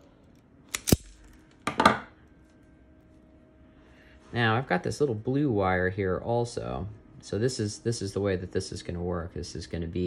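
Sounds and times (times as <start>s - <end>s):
wire stripper snapping: 0.7s - 2.0s.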